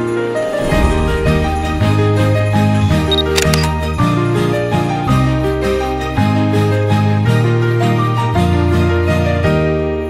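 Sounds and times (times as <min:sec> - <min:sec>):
christmas background music: 0:00.0 - 0:10.0
camera shutter click: 0:03.1 - 0:03.7.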